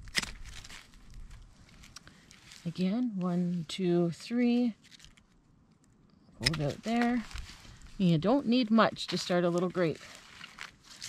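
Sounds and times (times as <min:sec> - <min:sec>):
woody cuttings rustling: 0:00.0 - 0:11.0
pruners snipping cane: 0:06.4 - 0:07.4.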